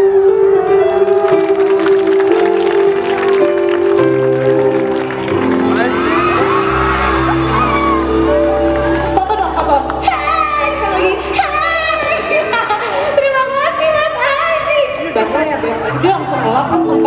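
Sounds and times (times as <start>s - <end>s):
keyboard chords: 0.0s - 14.1s
audience clapping along: 0.9s - 10.2s
audience cheering: 1.1s - 9.6s.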